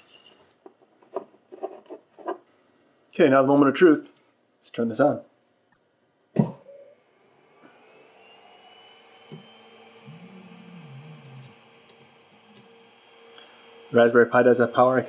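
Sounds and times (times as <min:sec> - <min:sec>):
low electrical hum: 0:00.0 - 0:15.0
cooling fans whining: 0:06.4 - 0:15.0.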